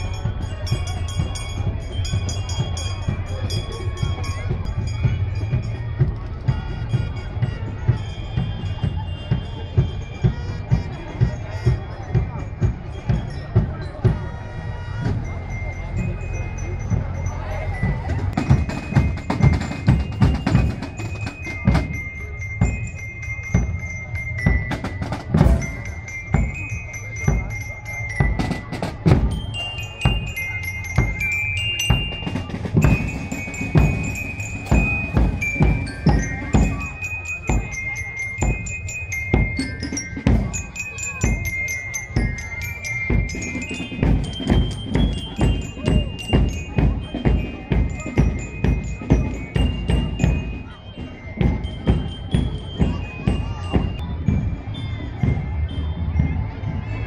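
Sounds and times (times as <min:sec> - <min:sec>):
steady drum beat: 0:00.0 - 0:56.9
glockenspiel bell melody: 0:00.0 - 0:57.0
marching band playing: 0:00.0 - 0:57.0.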